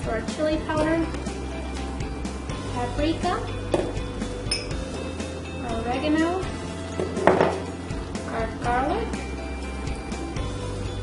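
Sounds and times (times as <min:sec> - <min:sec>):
faint background music: 0:00.0 - 0:11.0
glass bowl clink: 0:04.5 - 0:04.9.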